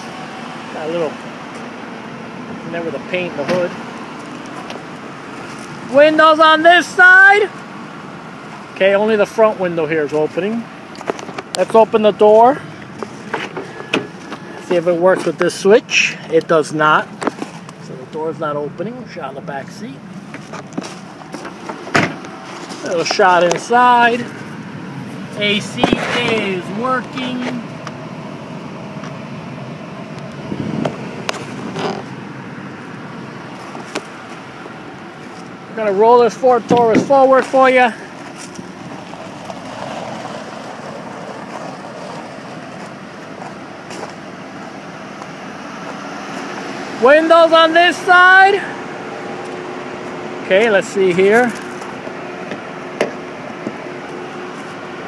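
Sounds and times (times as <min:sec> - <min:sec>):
car engine running: 0:00.0 - 0:55.0
tyres on gravel: 0:00.0 - 0:55.0.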